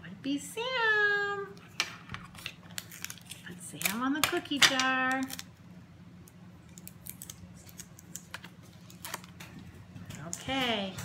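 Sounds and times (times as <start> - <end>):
tape peeling crackles: 2.2 - 4.0, 5.1 - 5.5, 6.2 - 9.7.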